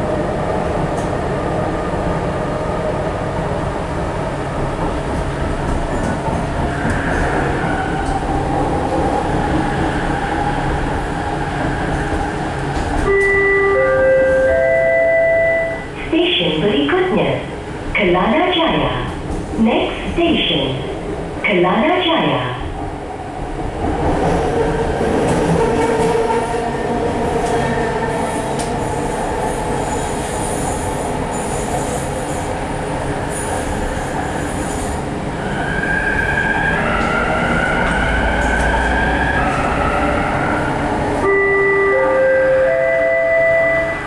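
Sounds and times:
metro train rolling: 0.0 - 44.0.

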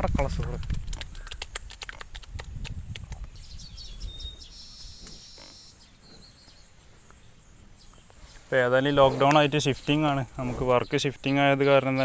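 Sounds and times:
buffalo chewing plants: 0.1 - 7.2, 7.9 - 11.0.

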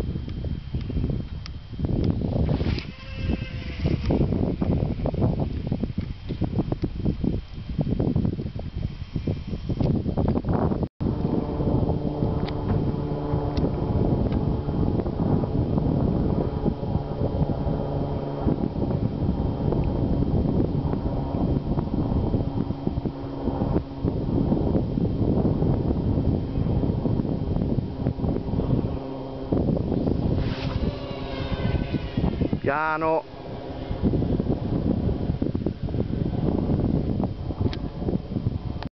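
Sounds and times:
wind buffeting microphone: 0.0 - 38.9.

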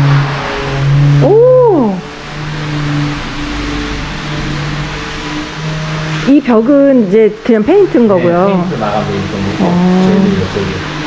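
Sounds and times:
outdoor background hiss: 0.0 - 11.0
soft held low notes: 0.0 - 11.0.

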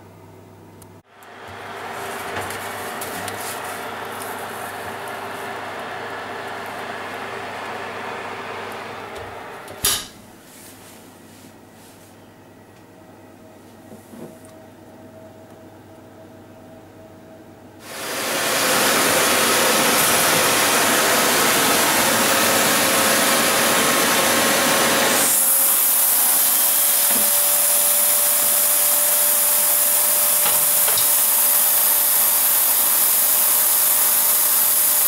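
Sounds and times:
heating oven humming: 0.0 - 35.0
vacuum cleaner running: 1.0 - 10.6, 17.8 - 35.0
oven running: 1.1 - 10.4
oven door banging shut: 9.8 - 10.2.

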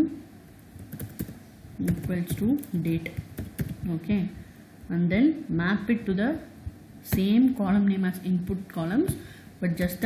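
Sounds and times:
typing on computer keyboard: 0.8 - 3.8.

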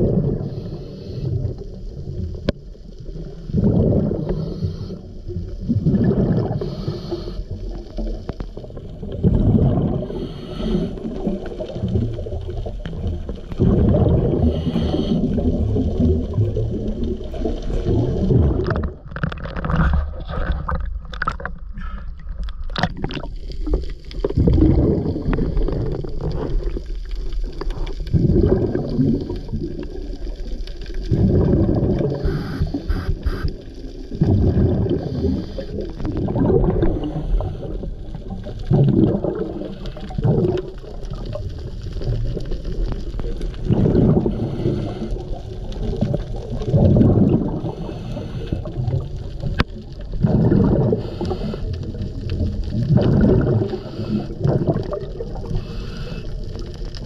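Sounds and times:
exhaled bubbles underwater: 0.0 - 57.0
regulator breathing: 32.2 - 33.6, 53.7 - 54.4, 55.5 - 56.5.

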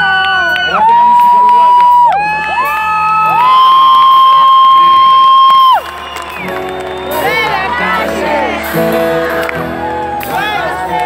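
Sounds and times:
band instruments playing: 0.0 - 11.0
concert crowd cheering: 0.0 - 11.0.

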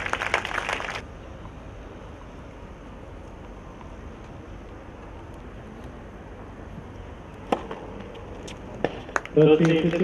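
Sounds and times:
racket hitting tennis ball: 7.5 - 8.0.

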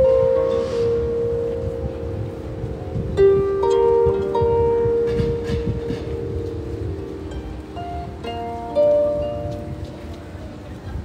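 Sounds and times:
harp strings ringing: 0.0 - 10.6
road vehicle rumble: 0.0 - 11.0.

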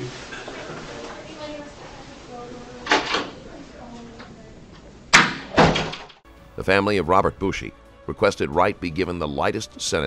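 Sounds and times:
faint room noise: 0.0 - 7.3.

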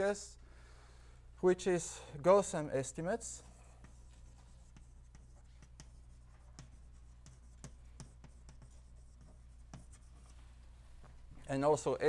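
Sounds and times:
steady low hum: 0.0 - 12.0
chalk tapping and scraping: 3.2 - 11.2.

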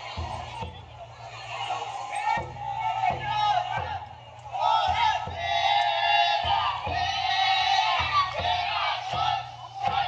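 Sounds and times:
crowd chanting and shouting: 0.0 - 10.0
taiko drum booms: 0.0 - 10.0.

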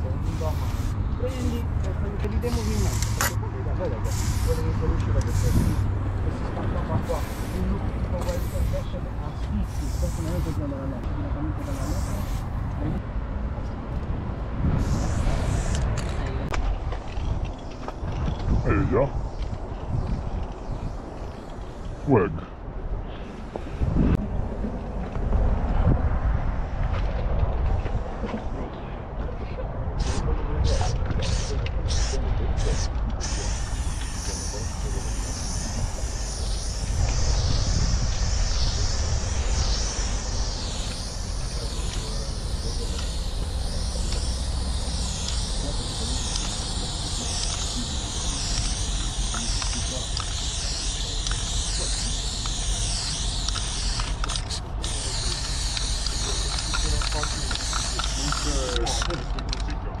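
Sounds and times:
spray paint can hissing: 0.0 - 11.0, 11.6 - 13.0, 14.8 - 16.3, 30.0 - 59.6
steady low rumble: 0.0 - 60.0.

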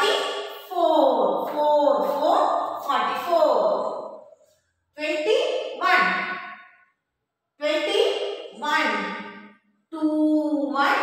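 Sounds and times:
person speaking drawn-out syllables: 5.0 - 6.2.

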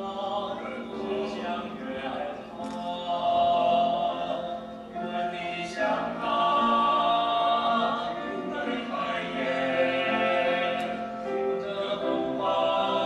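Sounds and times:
group singing in harmony: 0.0 - 13.0.

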